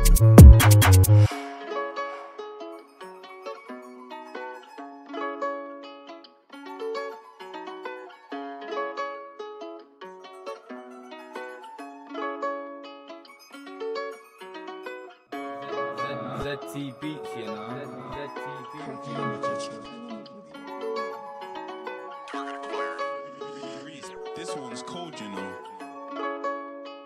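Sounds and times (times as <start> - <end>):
plucked-string melody: 0.0 - 27.0.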